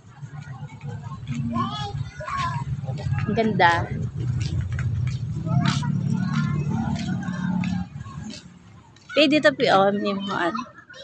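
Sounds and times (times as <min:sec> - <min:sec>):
voices nearby: 0:00.0 - 0:11.0.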